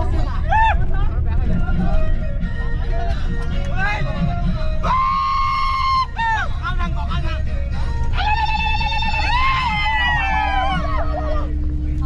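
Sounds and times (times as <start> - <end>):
bus rumble: 0.0 - 12.0
people shouting and cheering: 0.4 - 0.9, 4.8 - 6.5, 8.2 - 11.6.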